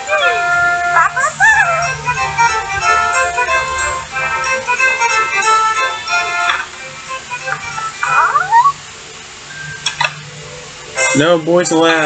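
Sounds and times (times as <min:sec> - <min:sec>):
high-pitched cartoon voice howling: 0:00.0 - 0:02.1, 0:08.1 - 0:08.8
background music: 0:00.0 - 0:12.0.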